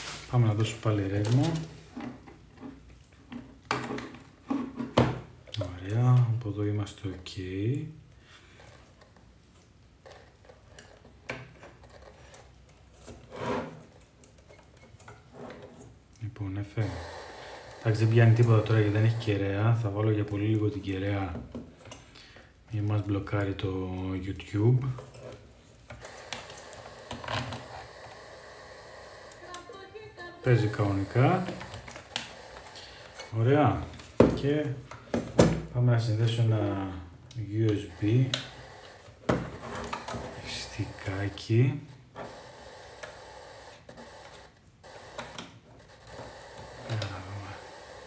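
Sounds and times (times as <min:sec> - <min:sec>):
faint steady hiss: 0:00.0 - 0:11.6.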